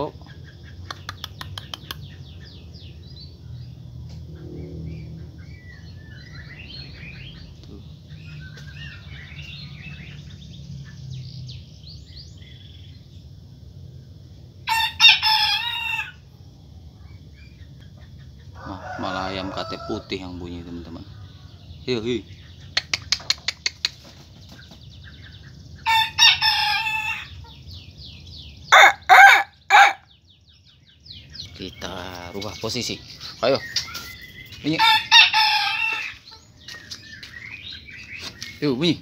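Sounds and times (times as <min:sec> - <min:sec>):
faint small birds chirping: 0:00.0 - 0:39.0
rooster crowing: 0:14.7 - 0:16.3, 0:18.6 - 0:20.5, 0:25.8 - 0:27.4, 0:28.7 - 0:30.1, 0:34.7 - 0:36.4.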